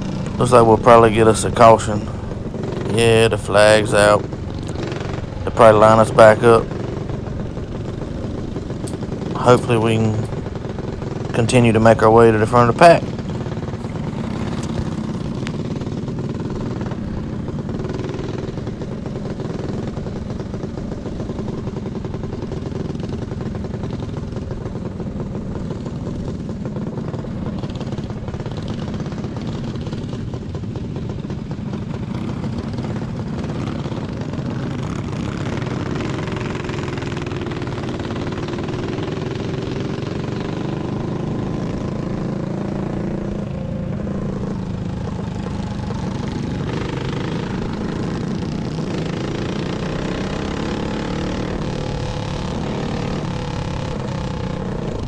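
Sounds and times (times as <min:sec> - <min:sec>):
kart engine running: 0:00.0 - 0:55.0.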